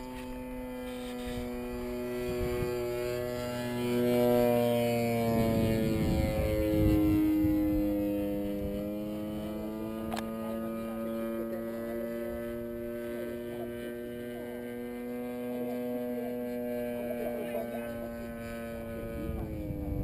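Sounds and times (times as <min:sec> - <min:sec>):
model plane motor drone: 0:00.0 - 0:20.0.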